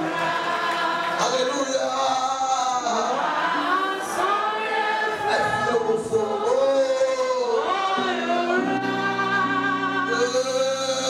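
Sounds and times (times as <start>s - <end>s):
congregation singing: 0.0s - 11.0s.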